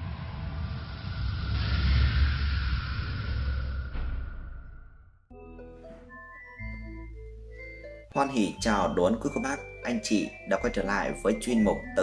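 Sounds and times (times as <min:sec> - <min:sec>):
deep rumble: 0:00.0 - 0:05.3.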